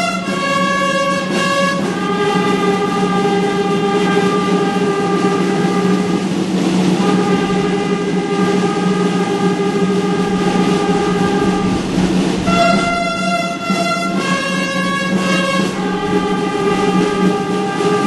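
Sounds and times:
brass band sustained chords: 0.0s - 18.0s.

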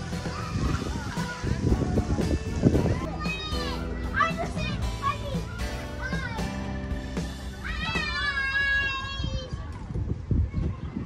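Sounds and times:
background music: 0.0s - 8.8s
children calling and squealing: 0.0s - 11.0s.

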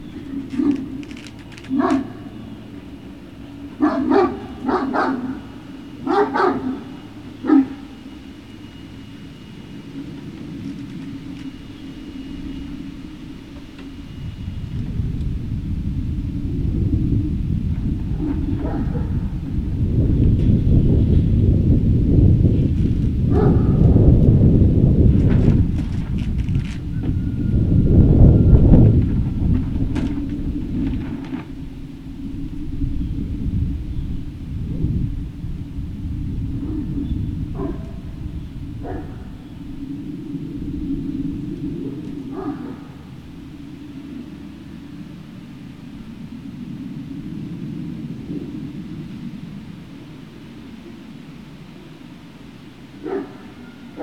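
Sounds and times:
low rumble: 0.0s - 52.8s
puppies barking: 0.5s - 1.0s, 1.7s - 2.4s, 3.8s - 8.0s, 18.6s - 19.1s, 38.8s - 39.3s, 53.0s - 54.0s.

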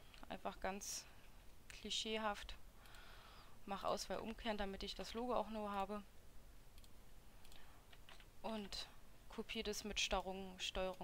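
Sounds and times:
computer mouse clicks: 6.8s - 8.8s, 10.1s - 11.0s.

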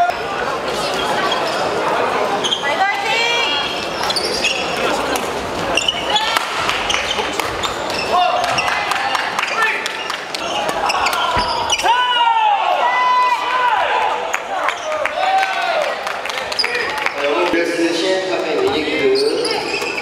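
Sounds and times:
shoes squeaking on wooden floor: 3.8s - 5.0s, 5.6s - 8.8s, 10.4s - 11.9s, 18.7s - 20.0s.

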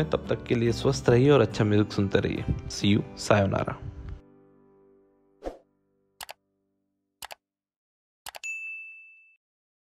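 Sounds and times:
bright bell ding: 8.4s - 9.4s.

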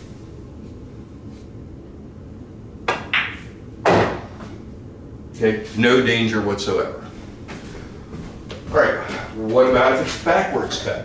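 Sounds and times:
ball dropping into pocket: 2.9s - 4.3s
pool balls clacking: 2.9s - 4.5s.

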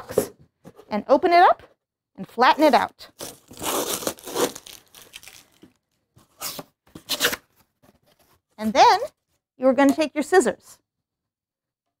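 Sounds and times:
tape ripped off cardboard box: 3.2s - 4.8s.

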